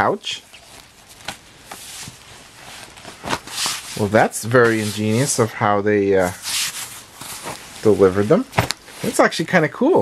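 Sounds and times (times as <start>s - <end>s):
fabric bag rustling: 0.6s - 5.4s, 6.3s - 9.3s
bag scuffing and rubbing: 6.4s - 9.2s.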